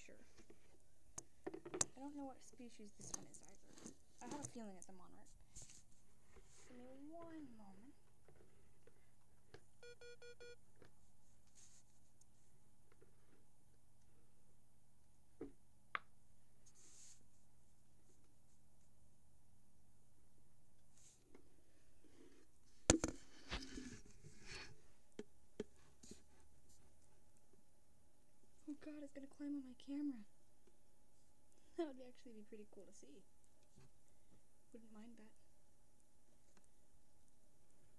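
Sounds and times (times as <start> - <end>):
quick electronic beeps: 9.8 - 10.6.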